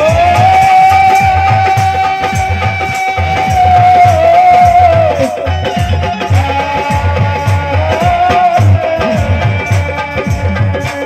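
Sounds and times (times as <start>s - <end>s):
drum beats: 0.0s - 11.0s.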